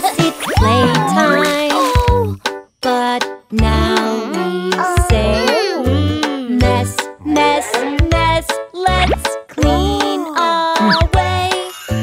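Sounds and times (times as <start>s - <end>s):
children's song singing: 0.0s - 11.9s.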